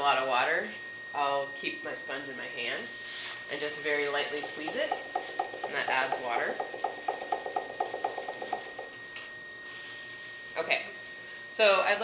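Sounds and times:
potter's wheel whine: 0:00.0 - 0:11.2
potter's wheel ticking: 0:03.6 - 0:09.0.

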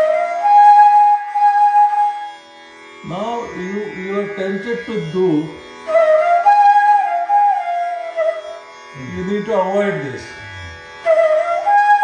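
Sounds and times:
bamboo flute sustained phrase: 0:00.0 - 0:02.4, 0:03.0 - 0:12.0.

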